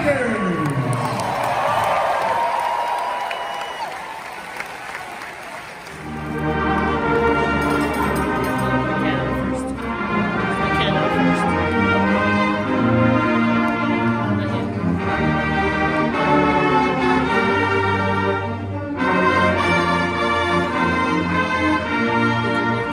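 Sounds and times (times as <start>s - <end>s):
crowd cheering and applauding: 0.0s - 7.0s
pep band brass music: 5.7s - 22.9s.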